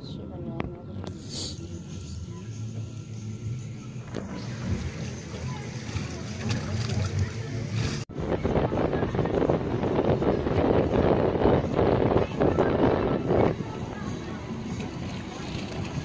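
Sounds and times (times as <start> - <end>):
sea water around pier: 2.2 - 16.0
wind on microphone: 8.1 - 16.0.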